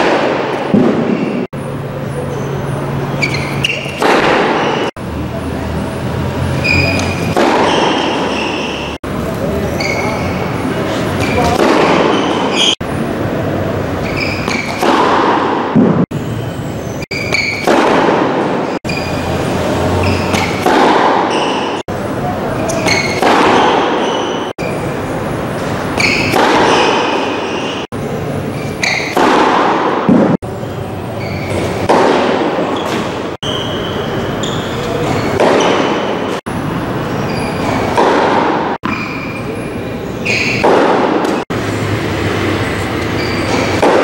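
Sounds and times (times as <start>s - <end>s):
rackets hitting tennis ball: 0.0s - 1.5s, 2.2s - 5.0s, 6.4s - 13.0s, 13.9s - 44.0s
loud steady background noise: 0.0s - 44.0s.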